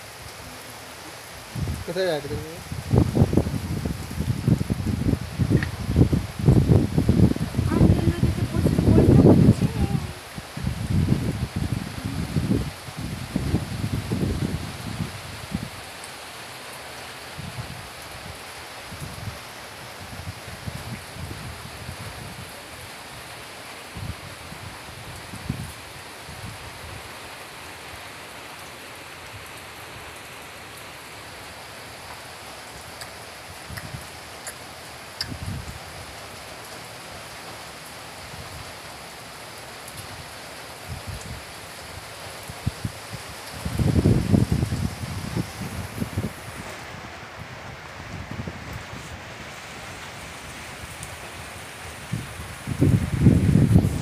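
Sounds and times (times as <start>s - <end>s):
wind rumbling on microphone: 0.0s - 16.0s, 17.1s - 28.6s, 31.2s - 37.4s, 39.8s - 54.0s
rain falling: 0.0s - 54.0s.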